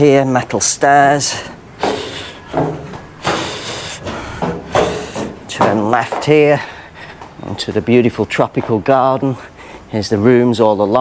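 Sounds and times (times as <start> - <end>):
footsteps on metal stairs: 1.0 - 9.5.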